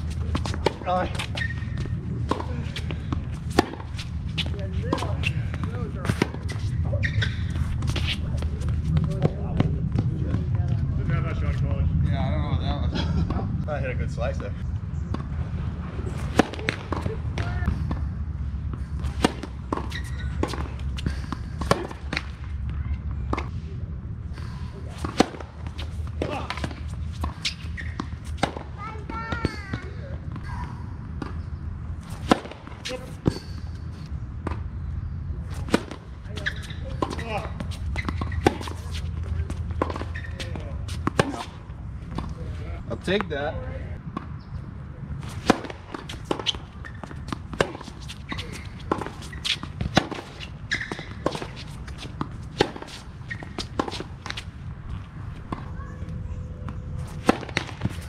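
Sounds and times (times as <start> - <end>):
tennis rackets striking ball: 0.0 - 9.4, 16.1 - 18.1, 18.8 - 22.4, 24.9 - 30.4, 32.0 - 33.5, 35.5 - 42.4, 45.2 - 55.7, 56.6 - 58.0
tennis ball bouncing on court: 0.0 - 10.6, 16.2 - 18.1, 18.7 - 23.5, 24.9 - 30.5, 32.0 - 33.5, 35.5 - 42.4, 45.2 - 58.0.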